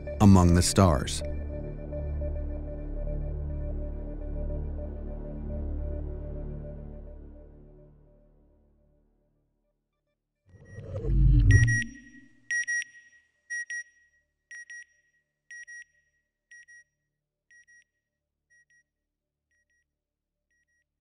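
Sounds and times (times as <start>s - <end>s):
low falling electronic whoosh: 10.6s - 12.3s
high double beep: 11.2s - 12.7s.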